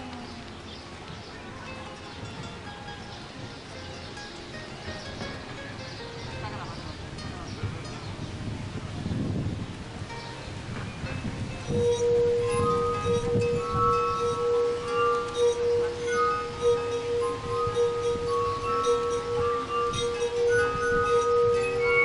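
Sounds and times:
glass harp melody: 0.0 - 22.0.

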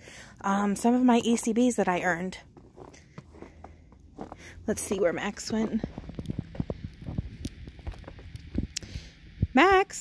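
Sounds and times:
footsteps on snowy wooden deck: 0.7 - 8.7.

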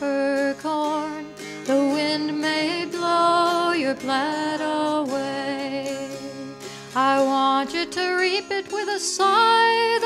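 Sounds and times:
plucked string accompaniment: 0.0 - 10.0
woman singing folk ballad: 0.0 - 10.0.

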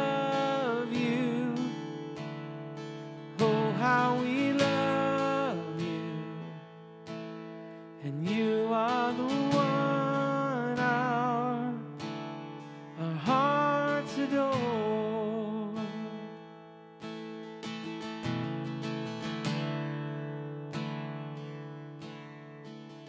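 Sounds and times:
man singing with vibrato: 0.0 - 2.3, 3.3 - 6.8, 8.0 - 12.1, 12.9 - 16.4
strummed acoustic guitar: 0.0 - 23.0.

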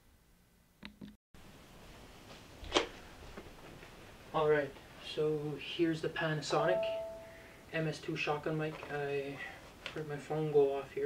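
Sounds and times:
background hiss: 1.4 - 11.0.

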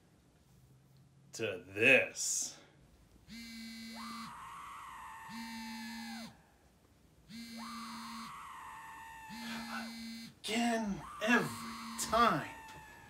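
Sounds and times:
phone ringtone: 3.3 - 4.4, 5.3 - 6.3, 7.3 - 8.4, 9.3 - 10.4, 11.2 - 12.5.

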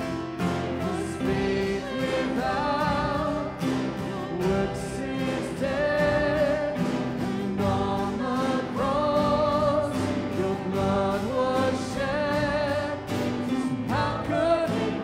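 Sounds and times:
acoustic guitar: 0.0 - 15.0
piano: 0.0 - 15.0
voices singing: 0.0 - 15.0.

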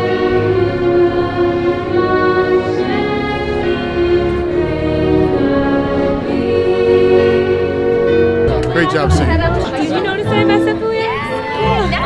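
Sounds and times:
orchestra playing: 0.0 - 12.0
crowd chatter: 3.9 - 12.0
man's voice: 8.5 - 9.9.

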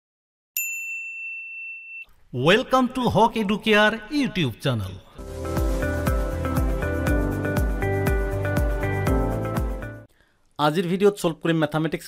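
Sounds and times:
high bell-like chime: 0.6 - 2.1.

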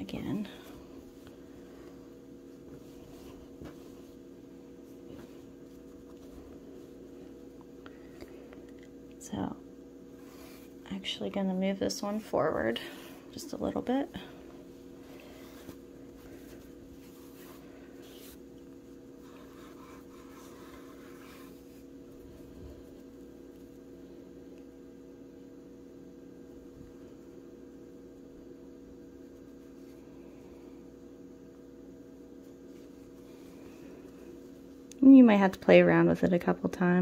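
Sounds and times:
faint steady hum: 0.0 - 37.0
hands rustling yarn: 0.3 - 8.7, 12.1 - 24.0.

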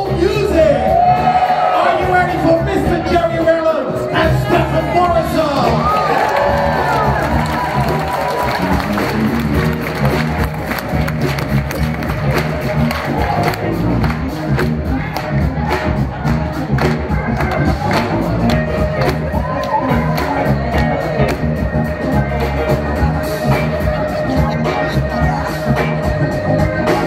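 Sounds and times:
audience cheering and shouting: 0.0 - 27.0
bass line: 0.0 - 27.0
live band playing: 0.0 - 27.0
drum beat: 4.2 - 25.4.

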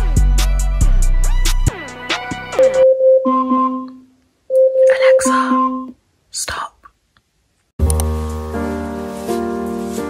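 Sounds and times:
alarm chime ringing: 2.8 - 5.9
person whispering: 4.8 - 7.0.

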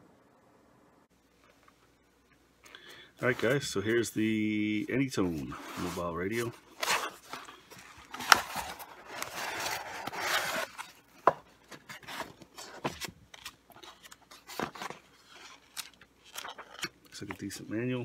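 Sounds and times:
cardboard and paper rustling: 3.2 - 17.6.

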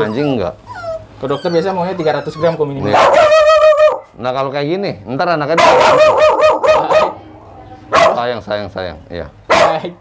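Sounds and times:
small dog barking: 2.8 - 4.1, 5.6 - 7.2, 7.9 - 8.2, 9.5 - 9.9.

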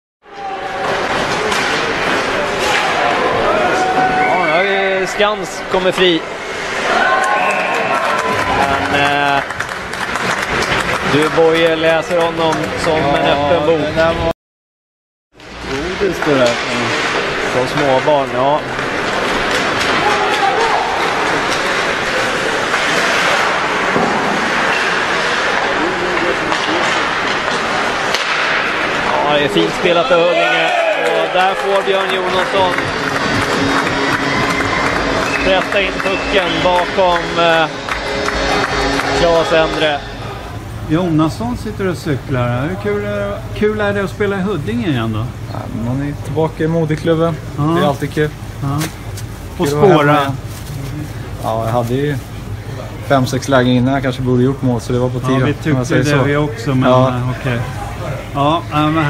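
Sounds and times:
crowd and rink noise: 0.2 - 14.3, 15.4 - 59.0
crowd murmur: 31.0 - 40.9, 52.3 - 53.1, 55.3 - 58.7.

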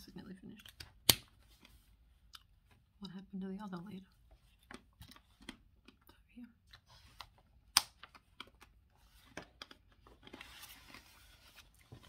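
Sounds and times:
paper pages rustling: 8.2 - 12.0.

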